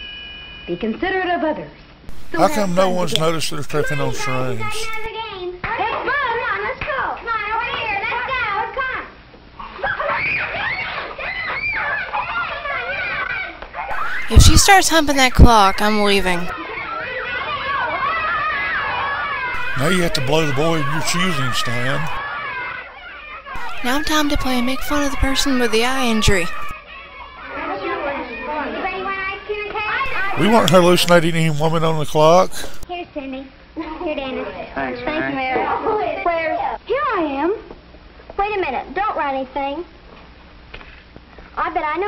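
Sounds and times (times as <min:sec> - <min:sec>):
children shrieking and squealing: 0:09.6 - 0:14.3
children chattering: 0:23.6 - 0:26.7.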